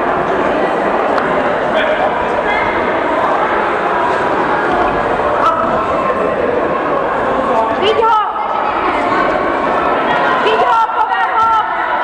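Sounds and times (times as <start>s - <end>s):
spectators shouting and chattering: 0.0s - 12.0s.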